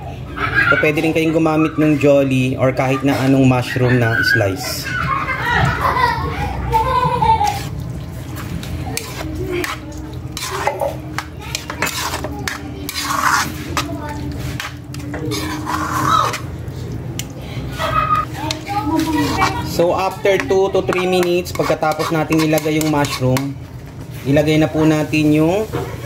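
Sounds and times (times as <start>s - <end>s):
metal spoon scraping frying pan: 8.9s - 16.6s, 18.5s - 23.6s.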